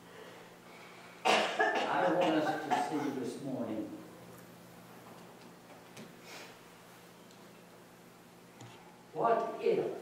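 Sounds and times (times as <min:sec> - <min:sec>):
man coughing: 0:01.2 - 0:03.3.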